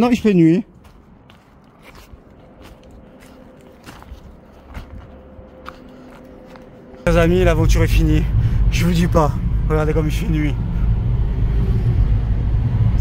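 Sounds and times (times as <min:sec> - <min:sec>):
faint footsteps crunching: 0:00.0 - 0:07.1.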